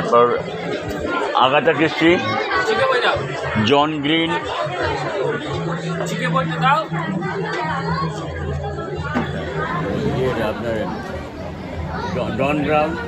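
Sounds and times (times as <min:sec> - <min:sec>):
people talking and chattering: 0:00.0 - 0:13.0.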